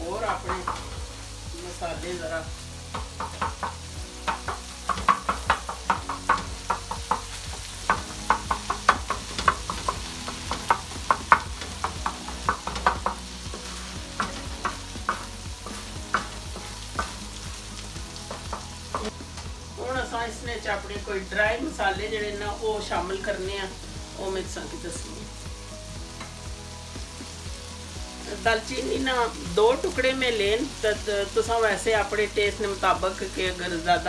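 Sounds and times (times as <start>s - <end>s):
meat sizzling: 0.0s - 34.0s.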